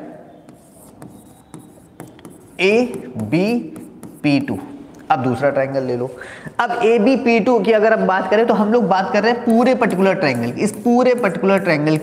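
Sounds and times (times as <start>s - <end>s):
stylus scratching on screen: 0.4s - 4.7s, 9.2s - 12.0s.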